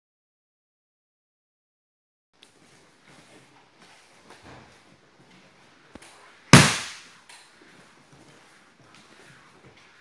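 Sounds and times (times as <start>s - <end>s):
body slapping onto mats: 6.6s - 7.1s.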